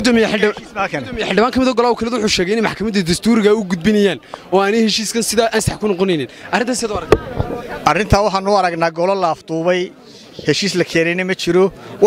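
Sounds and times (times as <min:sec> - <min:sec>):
man speaking: 0:00.0 - 0:07.1.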